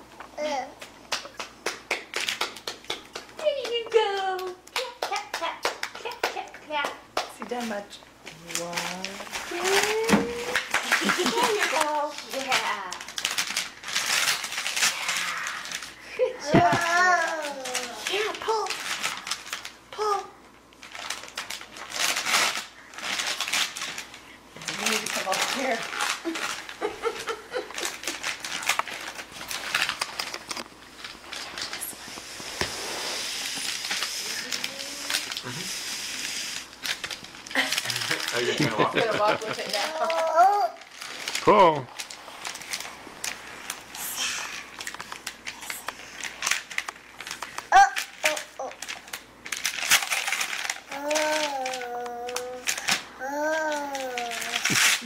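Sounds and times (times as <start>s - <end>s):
hands clapping: 0.8s - 7.5s
wrapping paper rustling: 7.6s - 55.0s.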